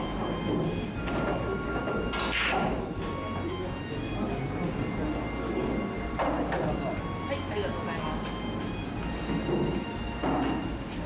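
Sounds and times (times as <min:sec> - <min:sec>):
background music: 0:00.0 - 0:11.0
pool cue striking ball: 0:00.4 - 0:03.2.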